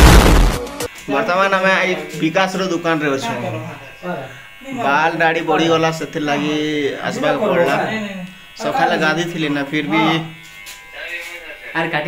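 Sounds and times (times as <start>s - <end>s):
electric hair clipper buzzing: 0.6s - 12.0s.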